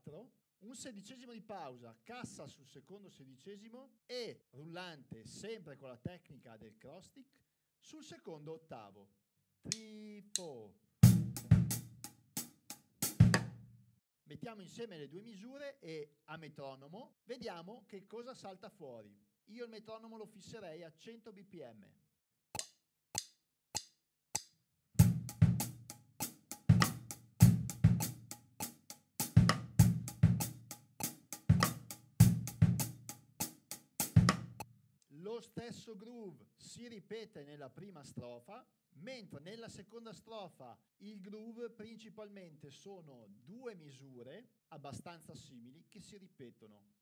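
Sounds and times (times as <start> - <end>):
closed hi-hat: 9.7 - 13.5, 24.4 - 34.6
bass drum: 11.0 - 12.1, 13.0 - 13.6, 25.0 - 34.6
metronome clicks: 22.6 - 24.5.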